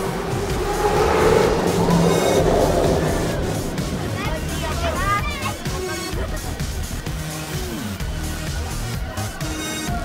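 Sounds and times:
vehicle-like rushing: 0.0 - 7.0
background music: 0.0 - 10.0.

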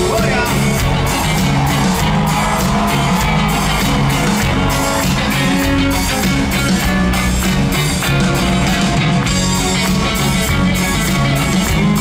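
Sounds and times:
electric guitar: 0.0 - 12.0
live rock band over pa: 0.0 - 12.0
steady drum beat: 0.0 - 12.0.

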